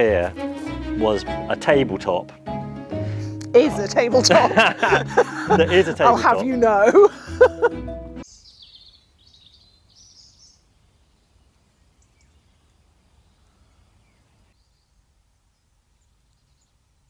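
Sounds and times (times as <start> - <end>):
small birds chirping: 8.2 - 17.0.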